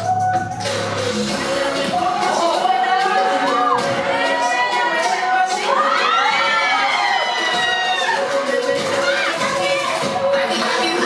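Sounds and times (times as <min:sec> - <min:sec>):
dance track over sound system: 0:00.0 - 0:11.0
audience shrieking and cheering: 0:02.0 - 0:10.1.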